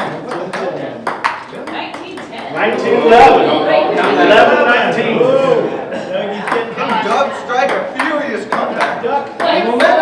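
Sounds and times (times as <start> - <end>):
table tennis ball clicking: 0.0 - 2.5
spectators' voices: 1.7 - 10.0.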